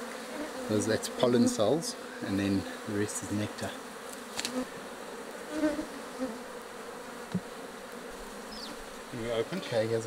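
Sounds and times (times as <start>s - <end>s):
honeybee colony buzzing: 0.0s - 10.0s.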